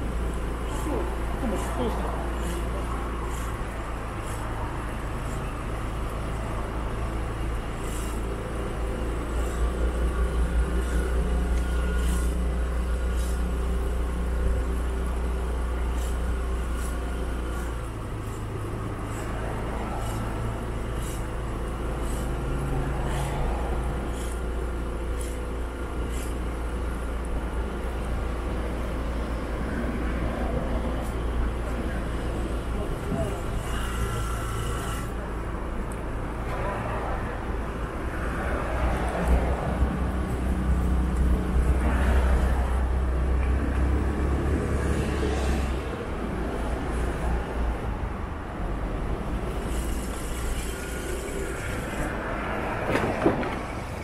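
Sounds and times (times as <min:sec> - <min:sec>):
vehicles passing: 0:00.0 - 0:54.0.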